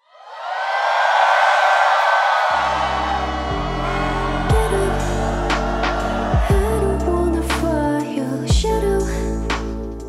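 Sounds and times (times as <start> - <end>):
audience cheering and screaming: 0.0 - 8.5
music with deep bass notes: 2.8 - 10.0.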